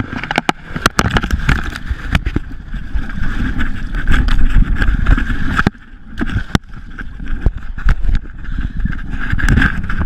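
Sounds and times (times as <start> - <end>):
knocks and scrapes in brush: 0.0 - 10.0.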